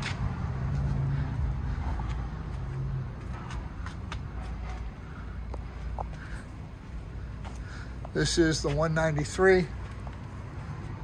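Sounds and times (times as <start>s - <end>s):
engine hum: 0.0s - 11.0s
road traffic rumble: 0.0s - 11.0s.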